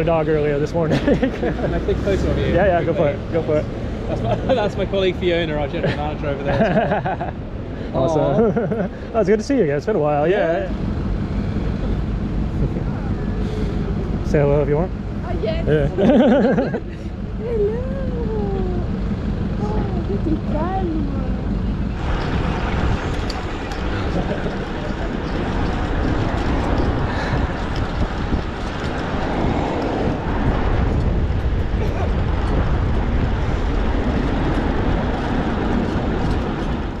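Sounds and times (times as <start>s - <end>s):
street traffic rumble: 0.0s - 37.0s
wind buffeting microphone: 10.8s - 37.0s
faint voices: 16.8s - 21.6s.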